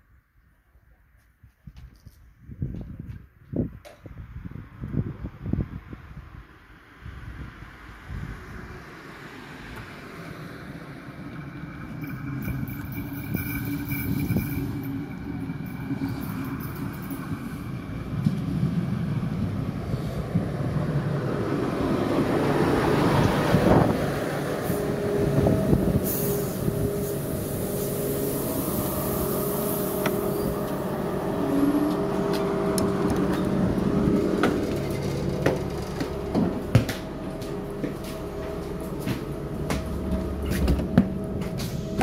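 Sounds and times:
train wheels rolling: 0:10.6 - 0:42.0
diesel engine running: 0:21.2 - 0:42.0.

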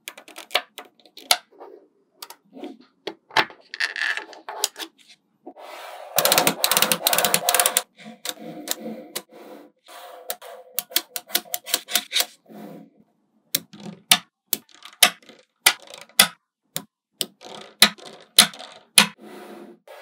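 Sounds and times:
magnetic balls clicking together: 0:06.2 - 0:09.3, 0:10.3 - 0:12.3, 0:13.5 - 0:19.2.

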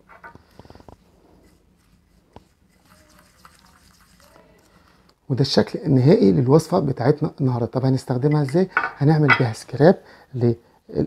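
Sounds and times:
wooden spoon stirring gritty scrub: 0:00.6 - 0:05.1.

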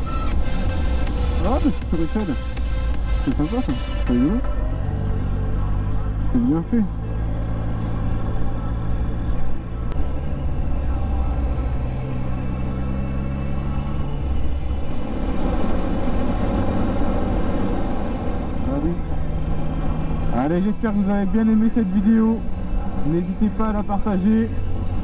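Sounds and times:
motorcycle engine cruising: 0:00.0 - 0:25.0.

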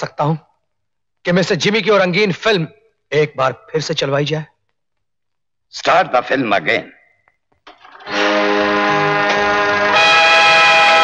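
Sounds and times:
film music sustained chord: 0:08.1 - 0:11.0.

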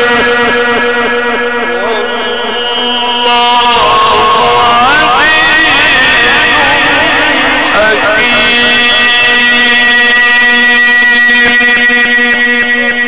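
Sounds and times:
man singing religious chant: 0:01.8 - 0:13.0.

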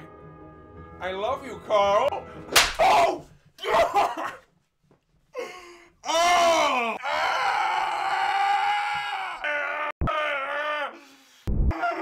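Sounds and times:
man wailing in anguish: 0:06.0 - 0:11.0.

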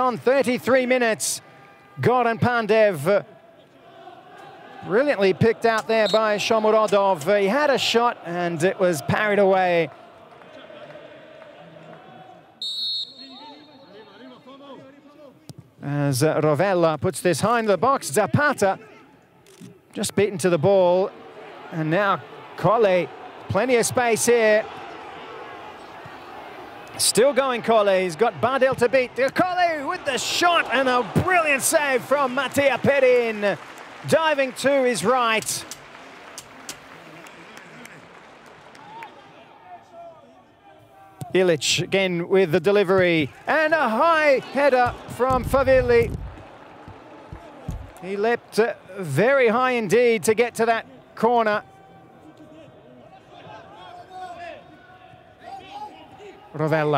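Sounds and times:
players shouting: 0:00.0 - 0:14.8, 0:20.0 - 0:35.7, 0:38.7 - 0:56.9
referee's whistle: 0:06.0 - 0:06.6, 0:12.6 - 0:14.5
distant players shouting: 0:21.1 - 0:33.4, 0:43.5 - 0:48.2.

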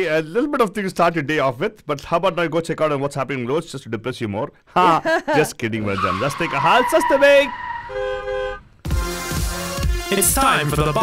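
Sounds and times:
electronic music with thumping beat: 0:08.8 - 0:11.0.

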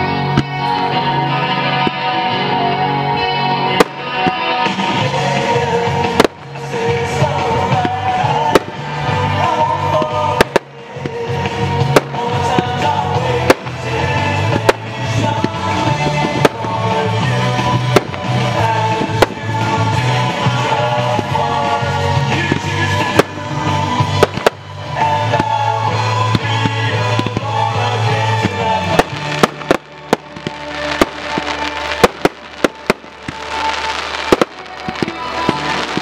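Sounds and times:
music playing: 0:00.0 - 0:36.0
firework bangs: 0:03.7 - 0:36.0.

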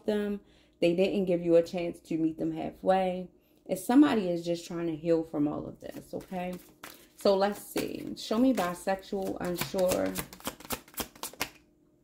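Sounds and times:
cards being shuffled: 0:05.9 - 0:11.6.

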